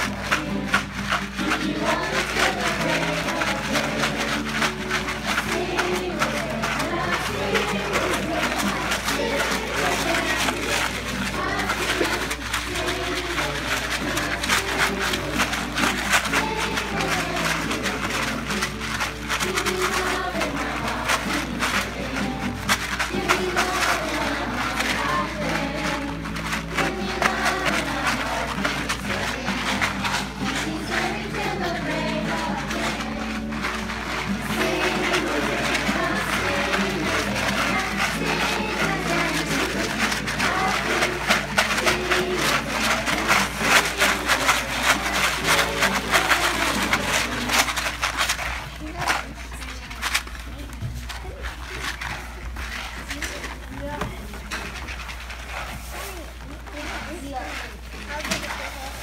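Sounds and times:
children singing: 0.0s - 48.0s
tambourines shaken: 0.0s - 49.4s
acoustic guitar: 0.0s - 59.0s.

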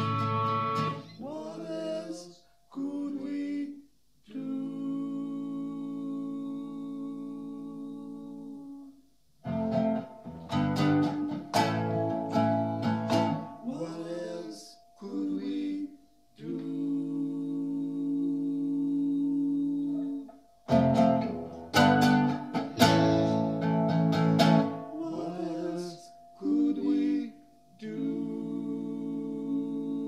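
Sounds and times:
acoustic guitar plucking: 0.0s - 2.2s, 9.4s - 16.0s, 19.8s - 28.8s
person singing: 0.0s - 9.0s, 13.4s - 30.0s.

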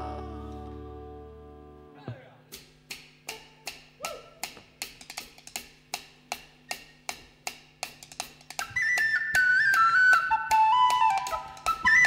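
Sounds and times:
drumsticks clicking: 2.5s - 8.6s
whistle melody: 8.6s - 12.0s.

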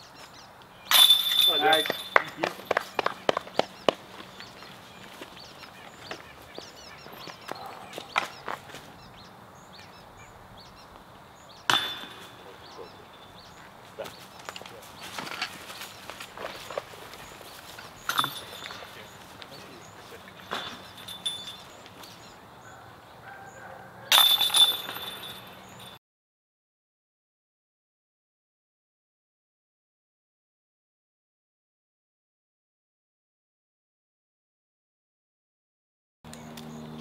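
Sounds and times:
discs hitting basket chains: 0.9s - 3.7s, 11.7s - 13.5s, 17.8s - 22.2s, 24.1s - 26.0s.

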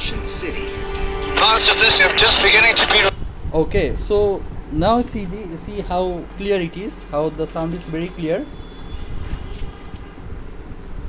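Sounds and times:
low rumbling documentary soundtrack: 0.0s - 8.2s.

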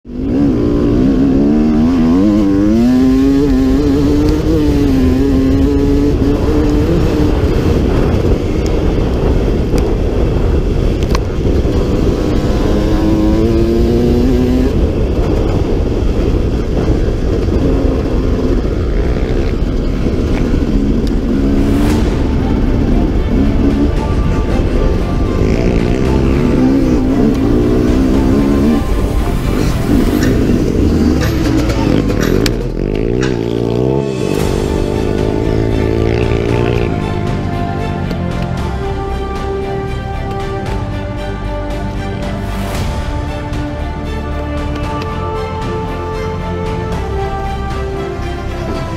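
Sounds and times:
dirt bike engine revving: 0.1s - 38.8s
wind rush: 0.1s - 48.9s.

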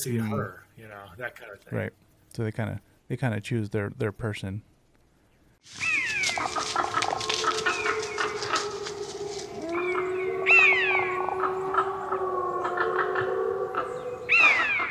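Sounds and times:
wolves howling: 5.7s - 14.9s
wolves yipping: 5.7s - 14.9s.

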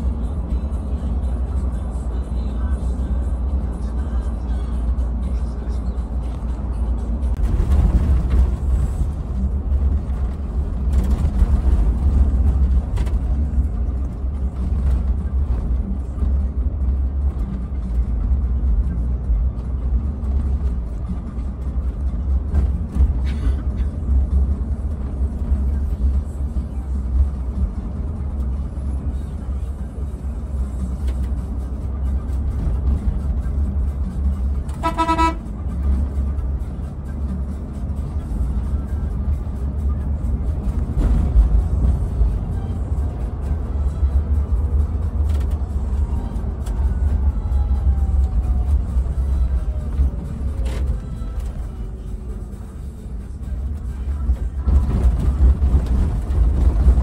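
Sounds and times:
bus engine and road rumble: 0.0s - 57.0s
vehicle horn toot: 34.7s - 35.6s.

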